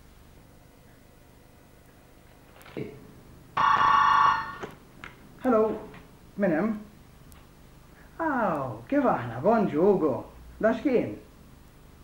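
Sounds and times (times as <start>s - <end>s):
telephone ringing: 3.6s - 4.8s.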